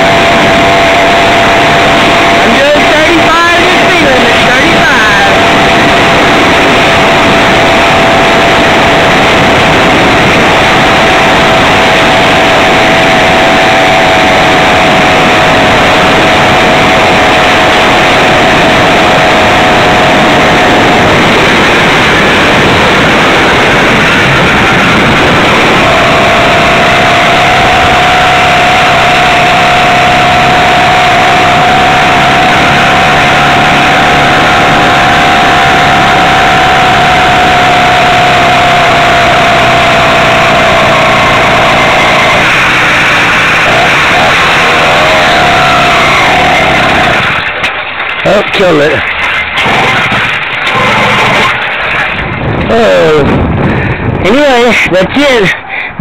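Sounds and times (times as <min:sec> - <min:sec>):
small two-stroke engine running: 0:00.0 - 0:54.5
wind noise on microphone: 0:00.0 - 0:56.0.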